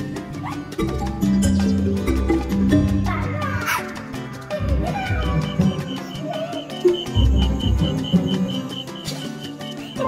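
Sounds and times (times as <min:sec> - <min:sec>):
cartoon music with latin beat: 0:00.0 - 0:10.0.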